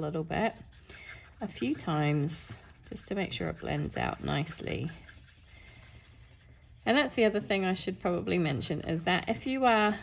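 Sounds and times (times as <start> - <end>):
person speaking: 0.0 - 5.2, 6.8 - 9.9
marker nib scratching on card: 0.4 - 8.3.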